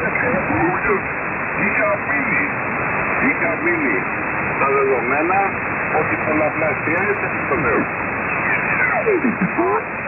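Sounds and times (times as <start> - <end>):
radio speech: 0.0 - 10.0
steady background hiss: 0.0 - 10.0.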